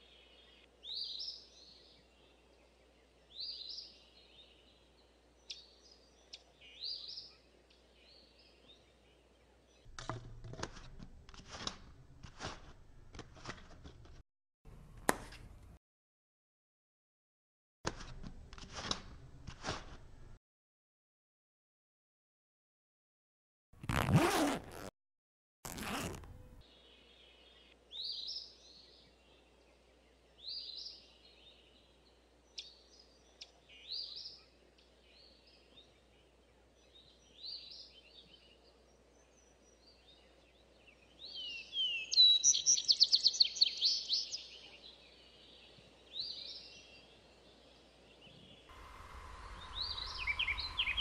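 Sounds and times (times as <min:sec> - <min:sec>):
backpack zipper: 0:23.8 - 0:24.9, 0:25.7 - 0:26.5
birds chirping: 0:25.7 - 0:51.0
steady hum: 0:48.7 - 0:51.0.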